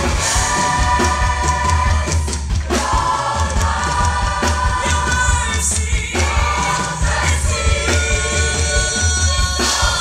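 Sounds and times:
drum kit: 0.0s - 10.0s
gospel choir singing: 0.0s - 10.0s.

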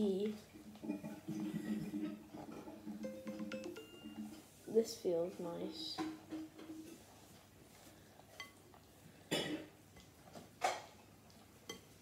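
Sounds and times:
spoon stirring batter in glass bowl: 9.8s - 12.0s.

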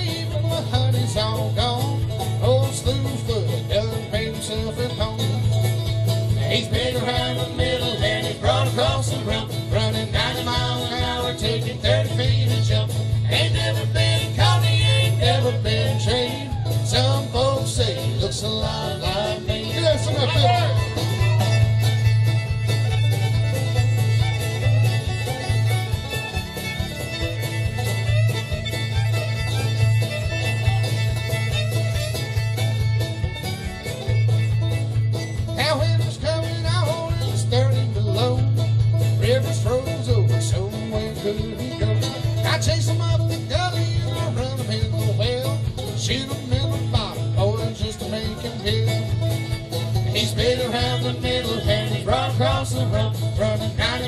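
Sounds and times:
steady drum beat: 0.0s - 54.0s
strummed acoustic guitar: 0.0s - 54.0s
fiddle solo with sliding notes: 19.4s - 39.8s.

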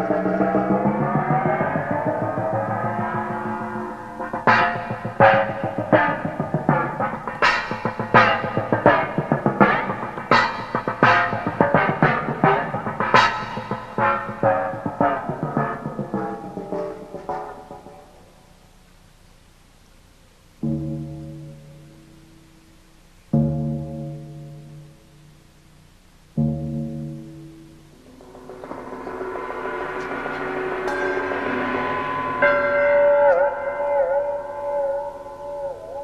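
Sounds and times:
gong ringing with bending pitch: 0.0s - 17.9s, 26.4s - 35.3s.

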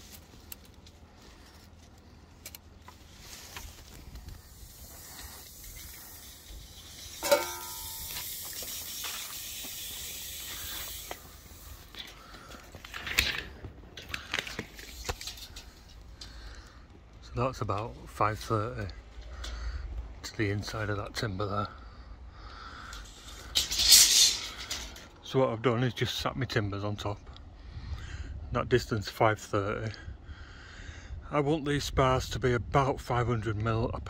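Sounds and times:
tape measure clicks and rattles: 2.4s - 12.2s, 12.8s - 16.2s, 22.9s - 25.2s
hiss: 4.0s - 12.0s, 22.9s - 25.0s.

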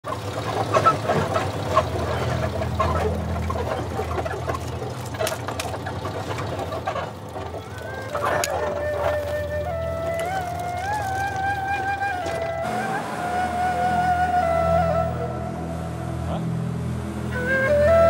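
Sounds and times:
small truck engine running: 0.0s - 18.0s
clicks and crackles: 0.1s - 12.6s.

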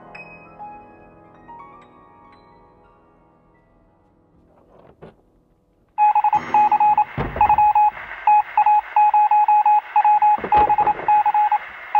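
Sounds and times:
rapid electronic morse beeps: 6.0s - 11.9s
low thuds: 6.5s - 8.2s.

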